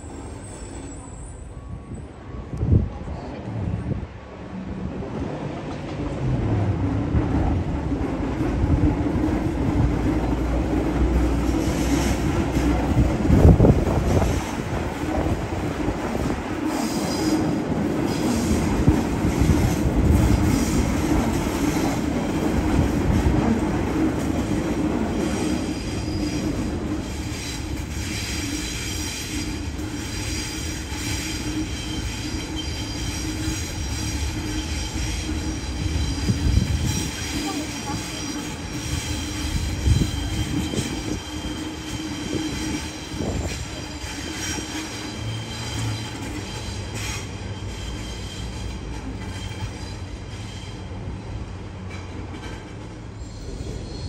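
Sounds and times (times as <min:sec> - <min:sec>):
train wheels squealing on rails: 0:00.0 - 0:03.4, 0:09.3 - 0:54.0
train rumble with low hum: 0:00.0 - 0:54.0.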